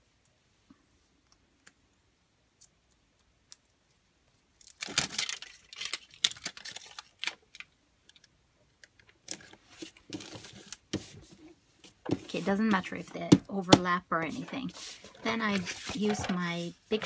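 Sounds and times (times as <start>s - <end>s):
foil tape crinkling and rustling: 4.6s - 11.1s.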